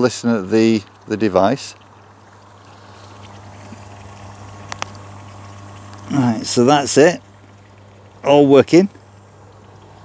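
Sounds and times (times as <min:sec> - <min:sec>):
air pump humming: 0:00.0 - 0:10.0
faint bubbling: 0:00.0 - 0:10.0.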